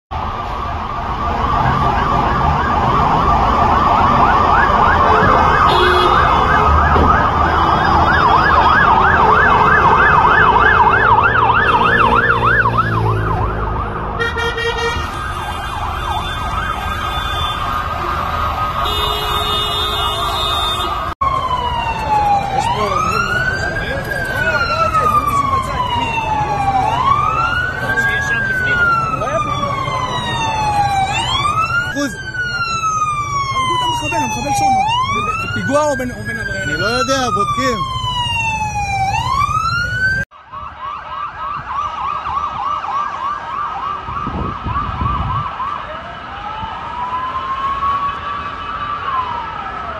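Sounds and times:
faster-cycling siren: 0.1 - 49.9
siren slow wail: 0.1 - 49.9
siren fast warbling yelp: 0.7 - 19.0, 20.9 - 40.2.

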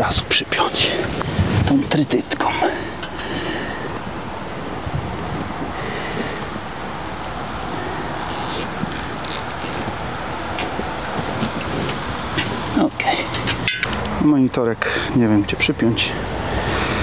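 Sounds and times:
cable tie ratcheting clicks: 8.2 - 9.9.

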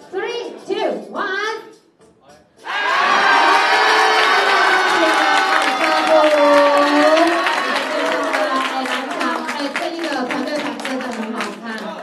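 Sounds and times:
crowd cheering and shouting: 2.6 - 9.7
crowd clapping: 2.8 - 12.0.

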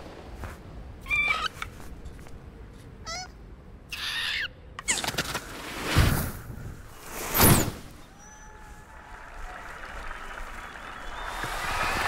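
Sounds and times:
squeaky cartoon animal calls: 1.0 - 1.6, 3.0 - 5.0.

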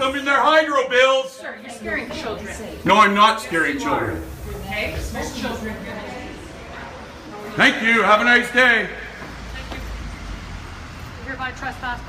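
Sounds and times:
road traffic rumble: 1.7 - 12.0.

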